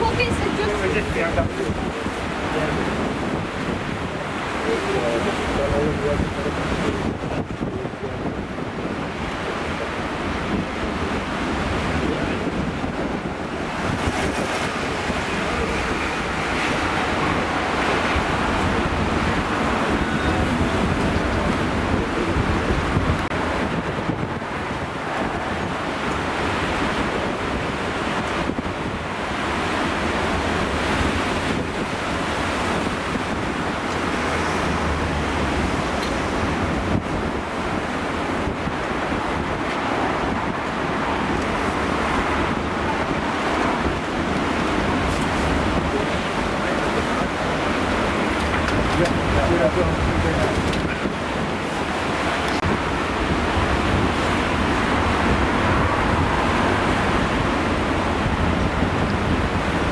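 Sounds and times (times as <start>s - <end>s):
surf breaking over rocks: 0.0s - 59.9s
wind buffeting microphone: 0.0s - 59.9s.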